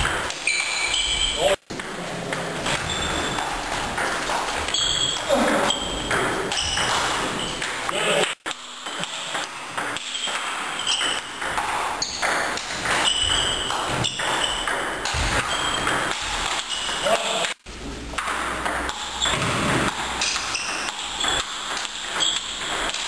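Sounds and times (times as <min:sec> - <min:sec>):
ball bouncing on table: 0:00.0 - 0:17.4, 0:18.1 - 0:23.0
ping pong ball clicking off paddles: 0:00.0 - 0:23.0.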